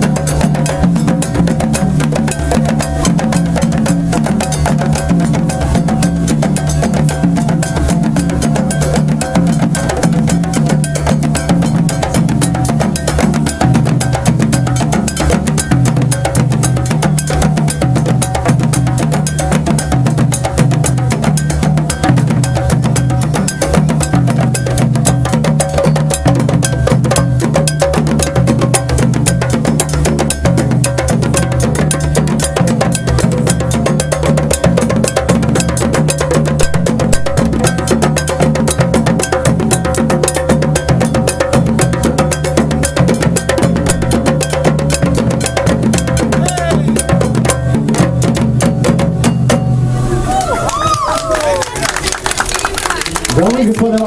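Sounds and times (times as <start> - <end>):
drum ensemble playing fast rhythm: 0.0 - 54.0
metal bell ringing a pattern: 4.4 - 18.4.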